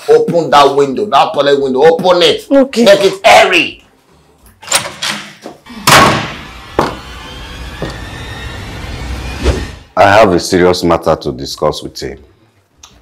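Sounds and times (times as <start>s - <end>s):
door slamming: 4.7s - 8.2s.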